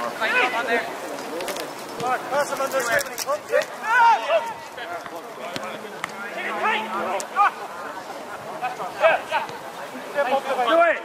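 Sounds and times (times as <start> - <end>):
men shouting outdoors: 0.0 - 1.0, 2.0 - 11.0.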